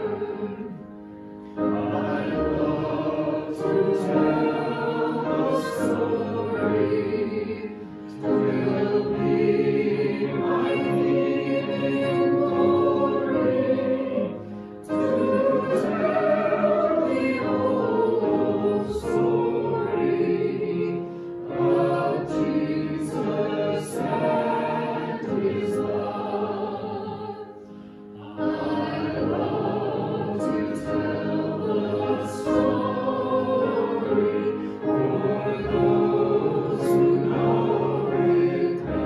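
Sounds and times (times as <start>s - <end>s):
group singing a hymn: 0.0s - 39.0s.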